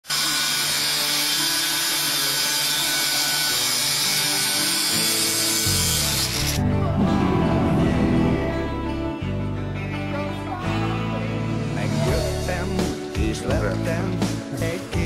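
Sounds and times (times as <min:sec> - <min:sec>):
angle grinder cutting metal: 0:00.0 - 0:06.6
low band music: 0:05.7 - 0:15.0.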